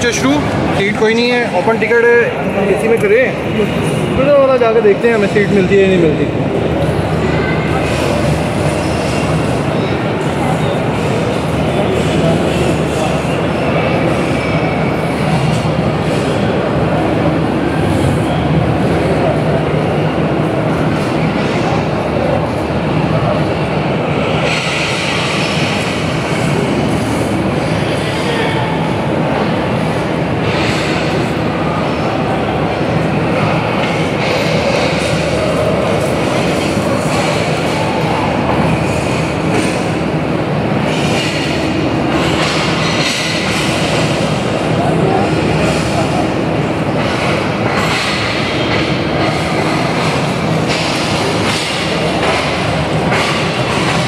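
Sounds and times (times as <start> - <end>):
busy station noise: 0.0 - 54.0.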